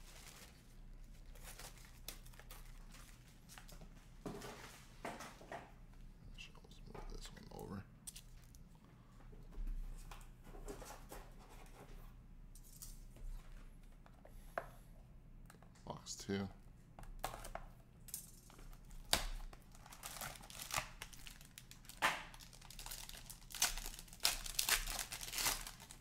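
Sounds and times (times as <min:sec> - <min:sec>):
cards and packaging rustling: 0:00.0 - 0:03.8, 0:18.2 - 0:26.0.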